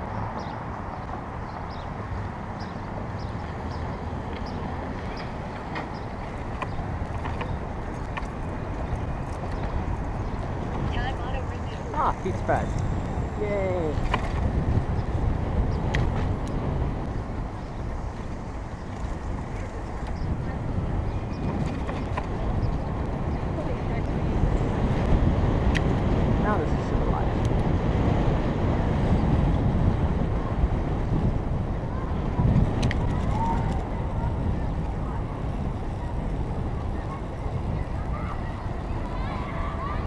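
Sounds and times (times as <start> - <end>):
city traffic: 0.0 - 40.0
wind buffeting microphone: 0.0 - 40.0.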